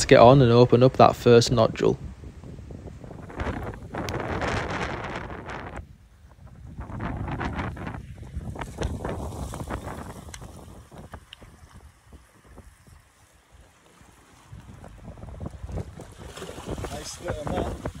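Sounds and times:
wind buffeting microphone: 0.0s - 18.0s
sea water washing on rocks: 7.5s - 18.0s.

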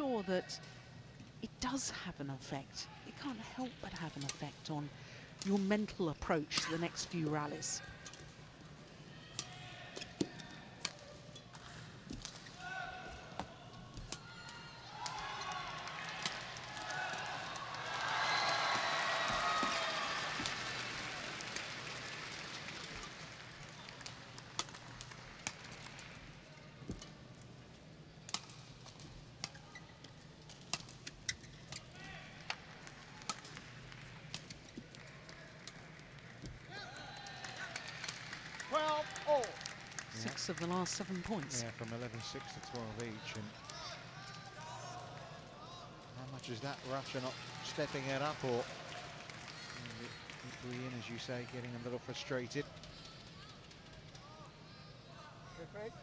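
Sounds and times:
crowd shouting and cheering: 12.6s - 23.0s, 36.7s - 40.1s.

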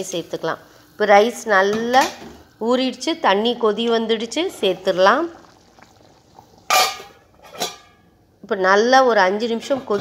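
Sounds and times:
pot lid clanking on metal pot: 1.7s - 2.4s, 6.7s - 8.0s.

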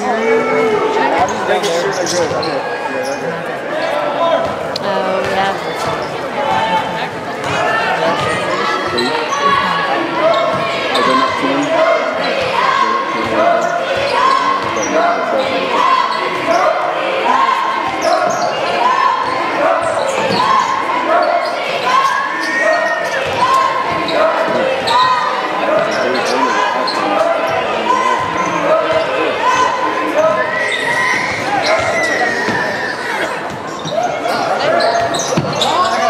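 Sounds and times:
voices and calls in hall: 0.0s - 36.0s.

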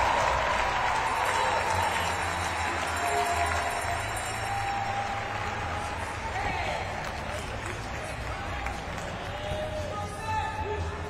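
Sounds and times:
applause: 0.0s - 9.8s
music playing in a hall: 0.0s - 11.0s.

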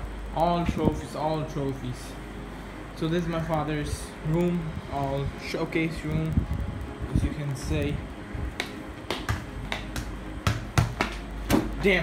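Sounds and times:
ball bouncing on tiled floor: 8.6s - 11.8s.

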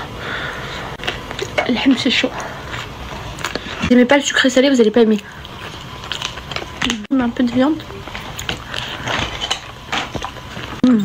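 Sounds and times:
chewing soft food: 2.3s - 3.9s, 4.8s - 7.1s, 7.8s - 11.0s
person humming mmh: 10.8s - 11.0s.

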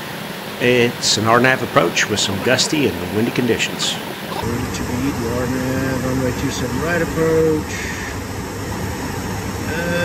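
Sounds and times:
jet cockpit airflow and engine drone: 0.0s - 10.0s
low hum: 0.0s - 10.0s.

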